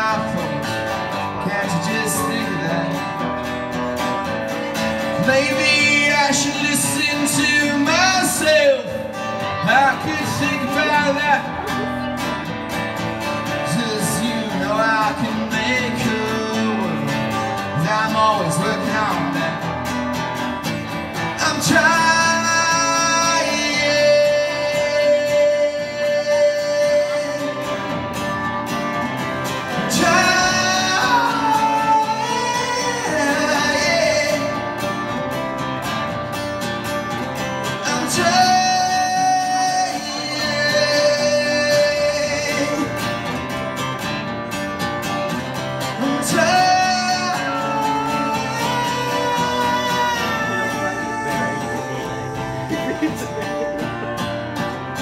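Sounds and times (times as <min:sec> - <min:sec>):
acoustic guitar playing: 0:00.0 - 0:55.0
person singing without words: 0:46.0 - 0:54.2.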